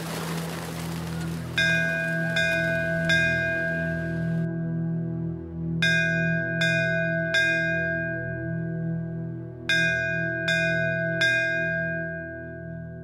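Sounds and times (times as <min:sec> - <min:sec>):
steady low drone: 0:00.0 - 0:11.1.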